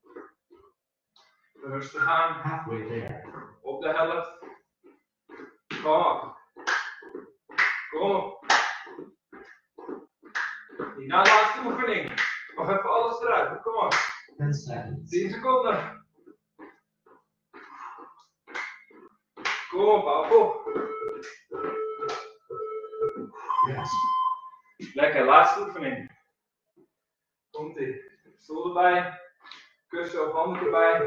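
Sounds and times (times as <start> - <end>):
man clapping hands: 6.6 - 7.0, 7.6 - 7.9, 8.5 - 8.9, 10.4 - 12.6, 13.9 - 14.3, 19.4 - 22.4.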